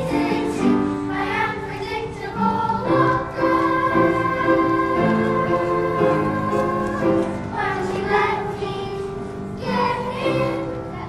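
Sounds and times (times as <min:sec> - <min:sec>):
children singing together: 0:00.0 - 0:11.0
piano accompaniment: 0:00.0 - 0:11.0.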